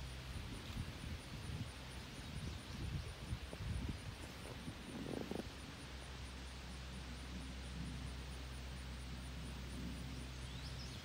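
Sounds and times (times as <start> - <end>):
wind buffeting microphone: 0.0 - 5.8.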